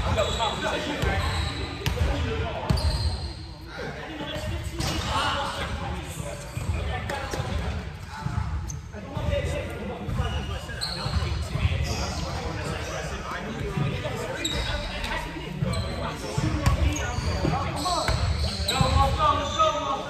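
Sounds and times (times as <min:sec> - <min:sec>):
shoe squeaks: 0:00.0 - 0:01.9, 0:02.6 - 0:03.5, 0:08.6 - 0:09.2, 0:10.0 - 0:13.2, 0:14.0 - 0:20.0.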